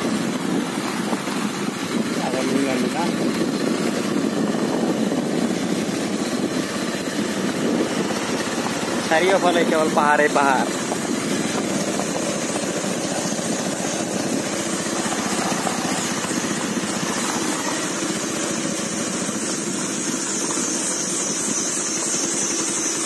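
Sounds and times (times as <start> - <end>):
motorcycle engine running: 0.0 - 23.0.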